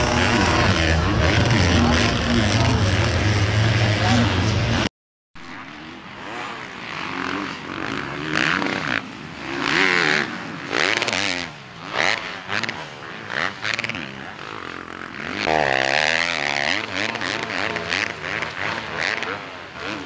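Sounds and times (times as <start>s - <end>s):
motocross bike engine revving: 0.0s - 20.0s.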